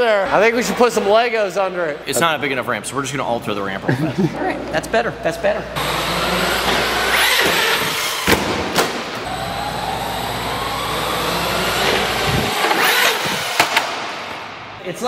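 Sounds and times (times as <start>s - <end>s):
rc truck motor whining: 5.8s - 14.3s.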